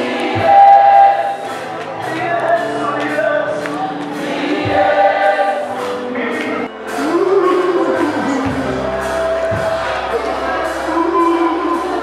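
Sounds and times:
accompanying music: 0:00.0 - 0:12.0
congregation singing worship song: 0:00.0 - 0:12.0.

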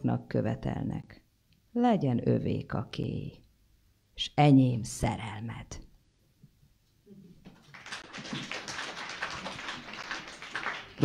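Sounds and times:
audience applauding lightly: 0:07.4 - 0:11.0.

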